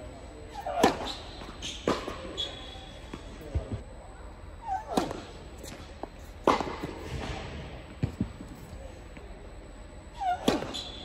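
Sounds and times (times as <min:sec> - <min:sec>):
tennis ball bouncing: 0:00.6 - 0:02.2
racket hitting ball: 0:00.6 - 0:02.3, 0:04.8 - 0:05.8, 0:06.4 - 0:07.4, 0:10.4 - 0:10.9
shoe squeak: 0:00.6 - 0:03.0, 0:10.2 - 0:11.0.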